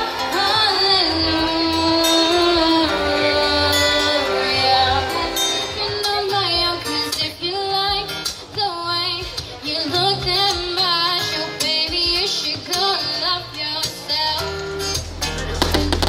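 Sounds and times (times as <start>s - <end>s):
woman singing into a microphone: 0.0s - 14.7s
strummed acoustic guitar: 0.0s - 16.0s.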